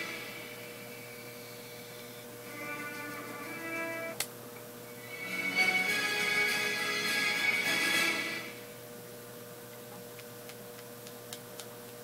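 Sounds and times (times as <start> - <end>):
television music: 0.0 - 8.8
faint steady hum: 0.0 - 12.0.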